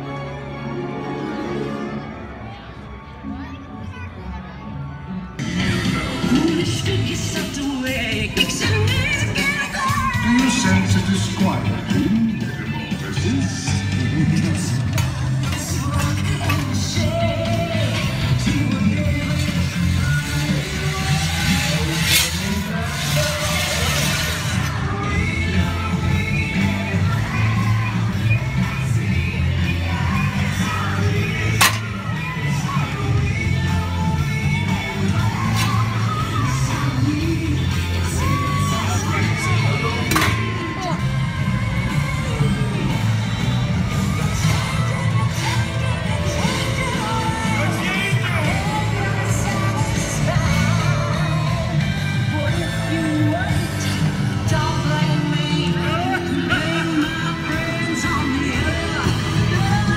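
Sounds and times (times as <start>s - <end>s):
crowd chatter: 0.0s - 59.9s
loud parade music with singing: 0.0s - 59.9s.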